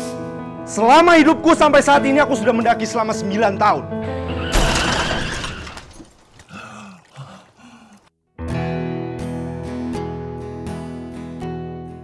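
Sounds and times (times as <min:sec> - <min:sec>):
glass shattering: 0:04.4 - 0:06.3.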